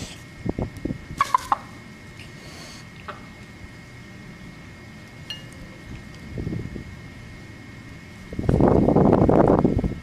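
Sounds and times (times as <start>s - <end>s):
rooster clucking: 1.2s - 1.8s.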